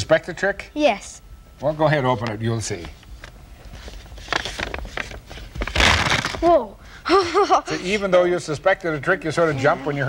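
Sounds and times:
paper envelope rustling: 3.7s - 6.5s
quick paper crackles: 4.1s - 6.5s.

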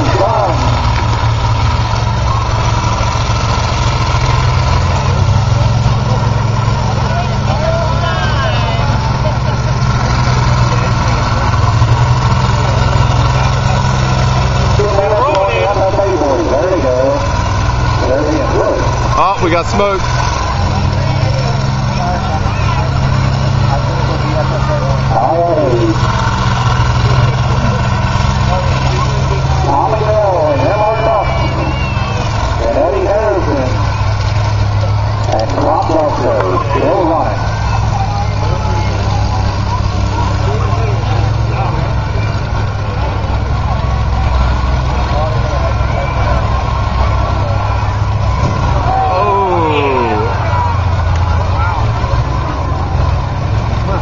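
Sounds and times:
combine harvester engines droning: 0.0s - 54.0s
indistinct voices: 0.0s - 54.0s.

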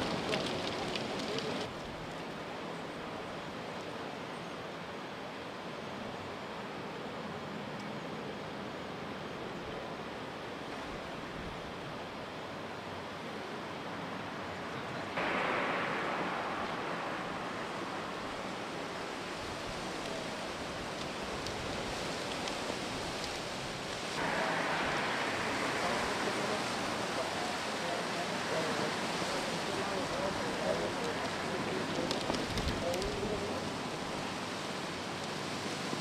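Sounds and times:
outdoor street ambience hiss: 0.0s - 36.0s.

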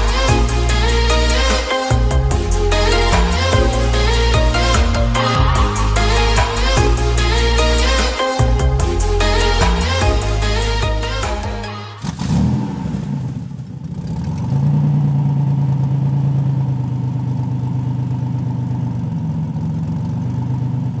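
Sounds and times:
music: 0.0s - 12.0s
car engine revving and running: 12.0s - 21.0s.

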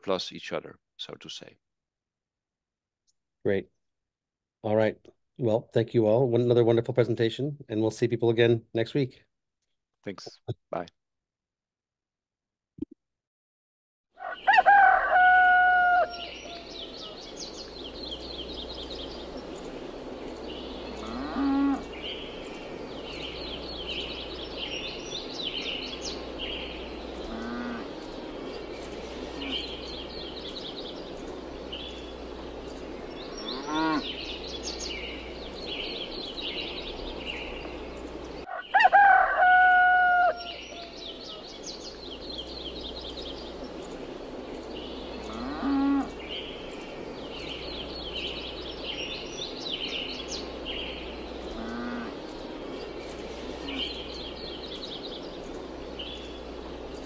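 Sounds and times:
rooster crowing loudly: 14.2s - 17.1s, 38.5s - 41.2s
small birds twittering: 14.2s - 57.0s
cow mooing: 21.0s - 21.8s, 27.3s - 27.9s, 33.4s - 34.1s, 45.3s - 46.1s, 51.6s - 52.2s.

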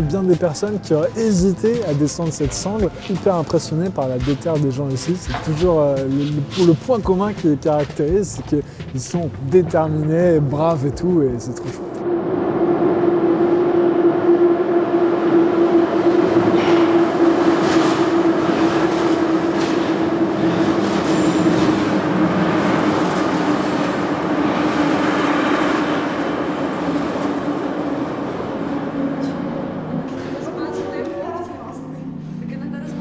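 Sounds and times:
metro train whine and rumble: 0.0s - 8.7s, 9.3s - 33.0s
wheels clacking over rail joints: 0.0s - 11.2s, 16.1s - 31.1s.

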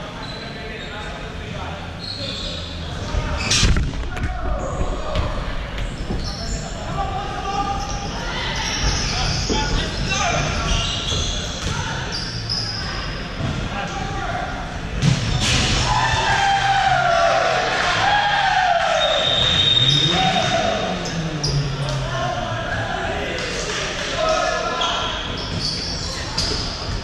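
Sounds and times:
players calling out: 14.6s - 27.0s.

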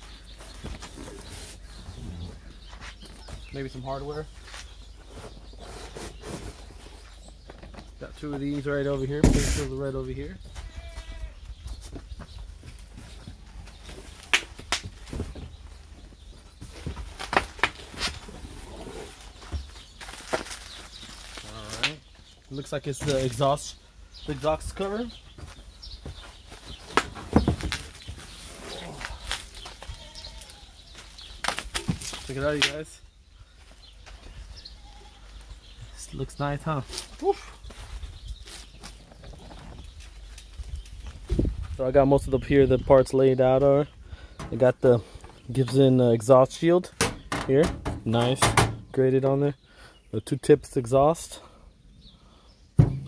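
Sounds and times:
sharp knocks: 52.8s - 53.0s.

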